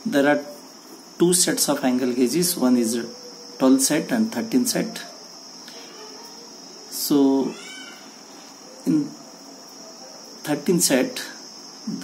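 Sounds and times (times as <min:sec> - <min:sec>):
faint high-pitched whine: 0:00.0 - 0:12.0
room hiss: 0:00.0 - 0:12.0
man speaking: 0:01.2 - 0:05.2, 0:06.9 - 0:07.8, 0:08.8 - 0:09.2, 0:10.4 - 0:12.0.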